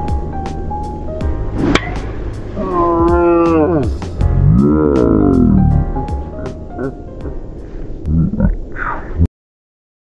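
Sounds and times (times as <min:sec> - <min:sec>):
background music: 0:00.0 - 0:08.1
golf club striking ball: 0:01.5 - 0:02.5
man calling ohh: 0:02.6 - 0:07.1.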